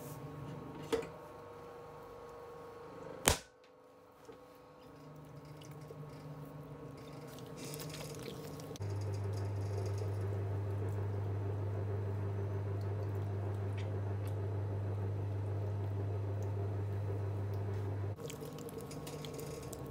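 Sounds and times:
wet clay squishing: 7.1s - 8.8s, 18.2s - 19.9s
electric wheel motor humming: 8.8s - 18.2s.

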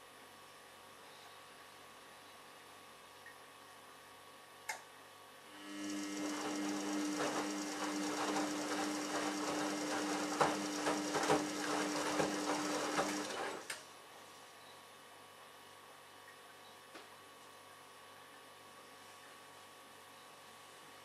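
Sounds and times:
drum motor hum: 5.7s - 13.7s.

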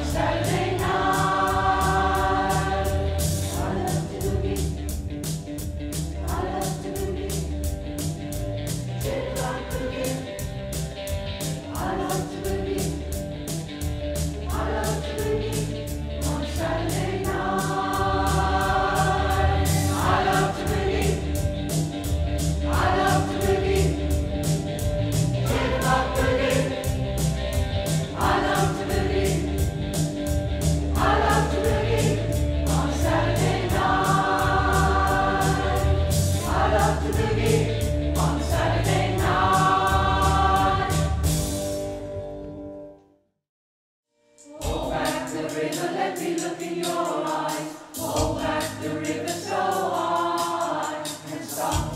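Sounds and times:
choir singing in harmony: 0.0s - 5.0s, 6.2s - 7.6s, 9.0s - 10.5s, 11.6s - 13.2s, 14.5s - 21.7s, 22.6s - 24.7s, 25.4s - 29.9s, 30.9s - 41.6s, 44.5s - 51.9s
pulsing bass accompaniment: 0.0s - 42.6s.

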